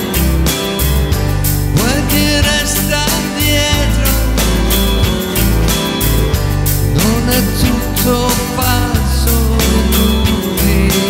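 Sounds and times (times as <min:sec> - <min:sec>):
low bass notes: 0:00.0 - 0:11.0
strummed acoustic guitar: 0:00.0 - 0:11.0.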